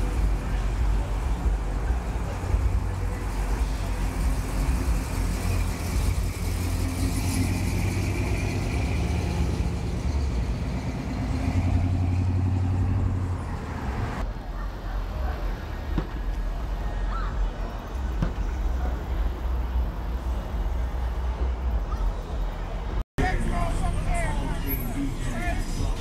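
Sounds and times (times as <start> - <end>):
cars driving past: 0.0 - 26.0.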